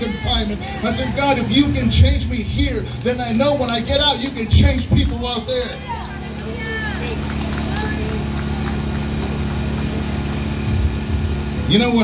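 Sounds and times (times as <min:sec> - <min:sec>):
generator engine running: 0:00.0 - 0:12.0.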